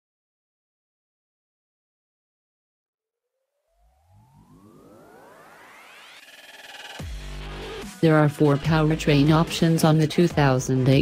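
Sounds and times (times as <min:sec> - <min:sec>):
synthesizer tones rising in pitch: 0:03.4 - 0:09.5
fast synth pulsing: 0:03.8 - 0:10.9.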